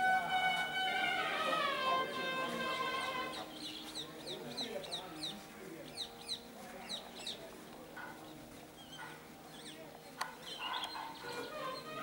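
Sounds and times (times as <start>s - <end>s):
birds chirping: 1.3s - 12.0s.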